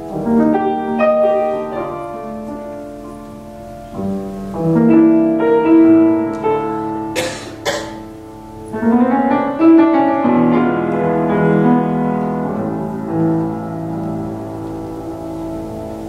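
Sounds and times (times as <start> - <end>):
grand piano playing: 0.0 - 16.0.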